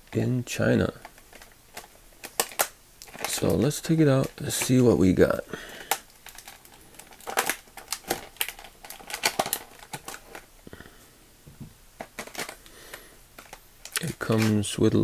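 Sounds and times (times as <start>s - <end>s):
plastic packaging crackling: 0.8s - 10.5s, 12.0s - 14.7s.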